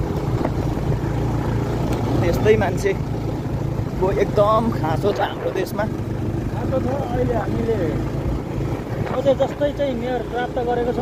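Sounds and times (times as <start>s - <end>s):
road noise on dirt road: 0.0s - 11.0s
vehicle engine running: 0.0s - 11.0s.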